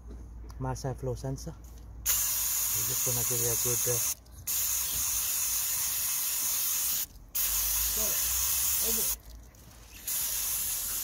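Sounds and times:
aerosol can spraying hiss: 2.1s - 9.2s, 10.0s - 11.0s.

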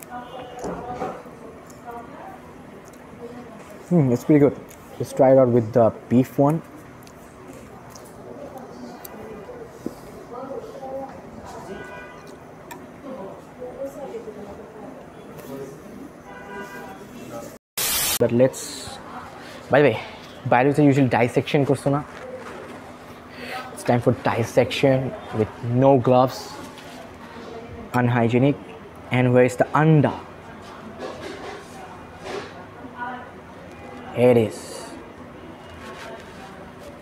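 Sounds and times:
faint background chatter: 0.0s - 17.6s, 18.7s - 37.0s
murmur of voices: 0.0s - 17.6s, 18.7s - 37.0s
static white noise burst: 17.8s - 18.4s.

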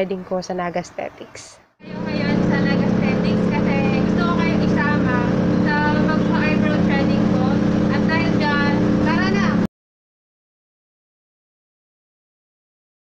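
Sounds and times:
woman talking: 0.0s - 9.7s
low mechanical hum: 1.8s - 9.7s.

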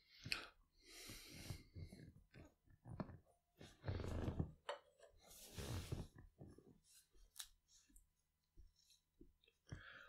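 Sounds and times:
faint breath: 0.0s - 1.9s, 9.7s - 10.0s
soft movement noises: 1.0s - 9.7s.

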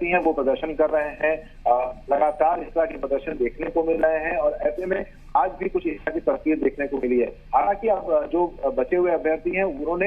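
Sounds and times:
man talking over telephone: 0.0s - 10.0s.

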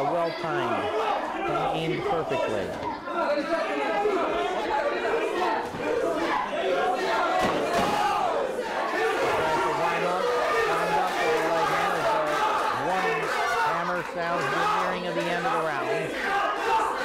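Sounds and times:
crowd shouting: 0.0s - 17.0s.

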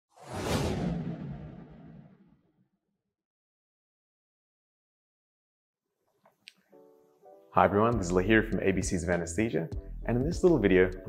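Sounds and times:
cinematic whoosh: 0.1s - 2.4s
low rumble: 0.2s - 2.4s.

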